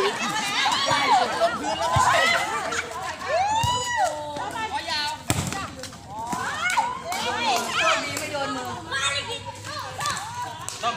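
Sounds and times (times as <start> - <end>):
voices calling out and talking: 0.0 - 10.9.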